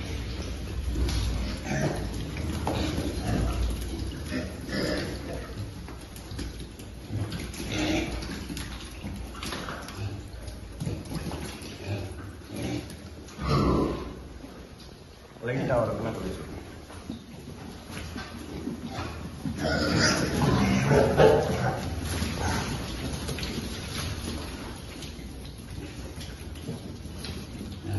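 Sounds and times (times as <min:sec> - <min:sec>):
trotters scuffling on wet concrete: 0:00.0 - 0:27.9
piglets grunting: 0:01.3 - 0:05.6, 0:18.8 - 0:23.0.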